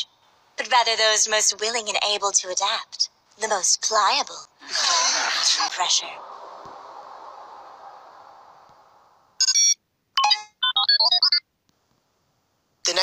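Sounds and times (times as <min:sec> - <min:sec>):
wash of sound: 0:04.6 - 0:09.4.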